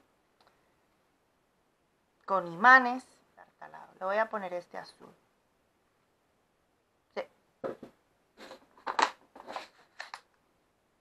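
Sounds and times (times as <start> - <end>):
clicks and rustles on tabletop: 7.6 - 10.4
plastic box of brads moved: 7.7 - 10.2.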